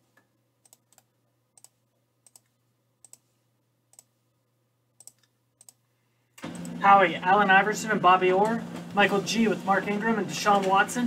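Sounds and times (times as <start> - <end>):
computer mouse clicks: 0.0 - 3.3, 3.9 - 4.2, 5.0 - 5.8.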